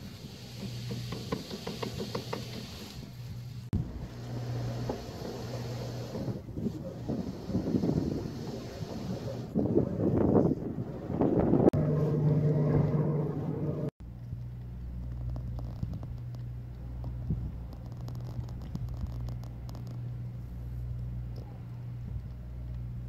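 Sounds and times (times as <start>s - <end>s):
low hum: 3.0s - 23.0s
wind buffeting microphone: 5.9s - 13.9s, 17.1s - 19.6s
vehicle engine droning: 11.7s - 23.0s.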